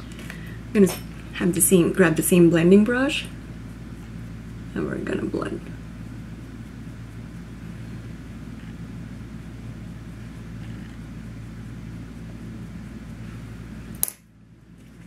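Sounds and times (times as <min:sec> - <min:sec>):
low hum with faint buzz: 0:00.0 - 0:15.0.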